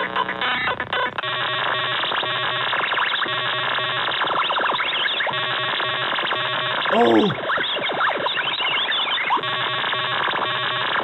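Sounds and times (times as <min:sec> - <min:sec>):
glitchy computer noise: 0:01.2 - 0:11.0.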